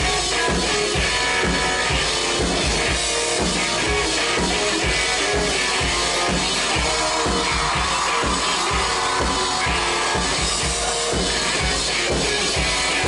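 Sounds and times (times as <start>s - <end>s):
drum kit beat: 0.0s - 13.0s
electric guitar: 0.0s - 13.0s.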